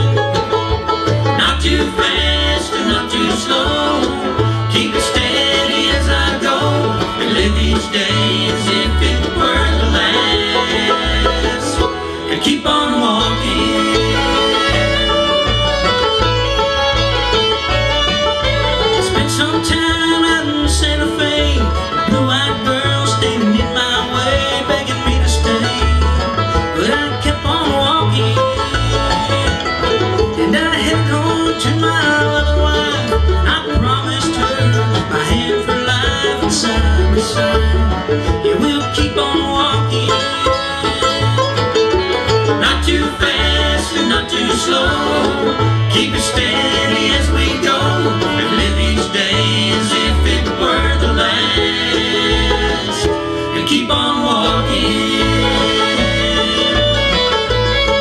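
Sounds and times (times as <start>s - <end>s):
banjo: 0.0s - 58.0s
bluegrass band playing: 0.0s - 58.0s.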